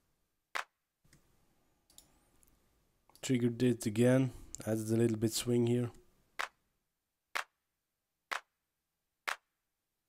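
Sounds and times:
electronic hand clap: 0.6 - 0.8, 7.4 - 7.6, 8.3 - 8.5, 9.3 - 9.5.

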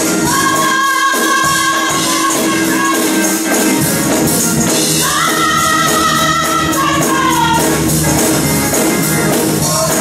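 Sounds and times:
women singing gospel: 0.0 - 3.6, 4.9 - 8.0, 9.4 - 10.0
instrumental backing with beat: 0.0 - 10.0.

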